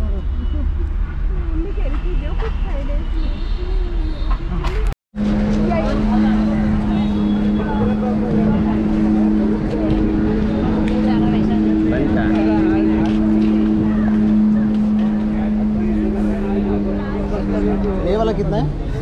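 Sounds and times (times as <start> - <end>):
people talking: 0.0 - 19.0
motor droning: 5.2 - 18.6.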